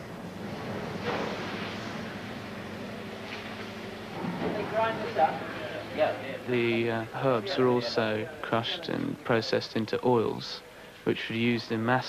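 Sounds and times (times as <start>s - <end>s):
factory hiss and rumble: 0.0s - 12.0s
faint low hum: 0.0s - 12.0s.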